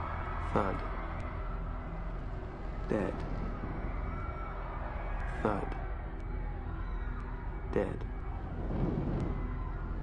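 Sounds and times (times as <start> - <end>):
low rumbling ambience: 0.0 - 10.0
man speaking: 2.9 - 3.2.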